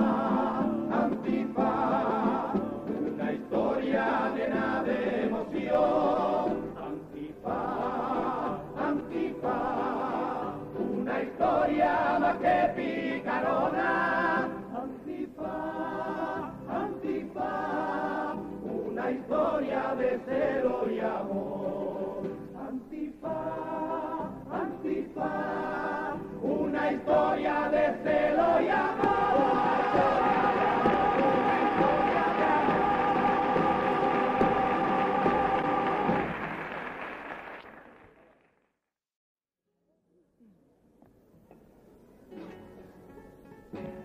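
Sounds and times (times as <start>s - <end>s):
male chorus singing in parts: 0.0s - 36.4s.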